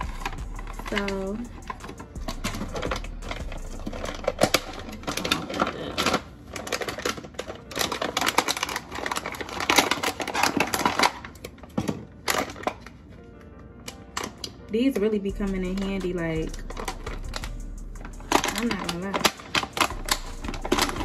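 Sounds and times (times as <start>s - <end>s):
plastic packaging crinkling: 0.0s - 14.7s, 15.4s - 21.0s.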